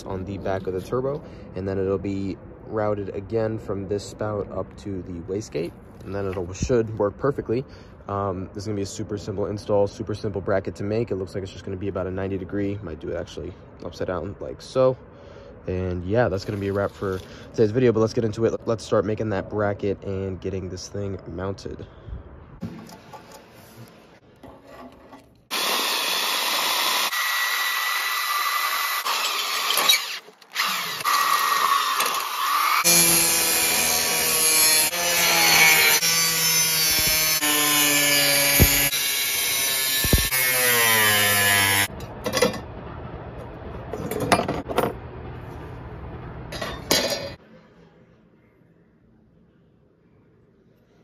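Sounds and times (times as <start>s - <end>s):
angle grinder cutting steel: 25.5s - 41.9s.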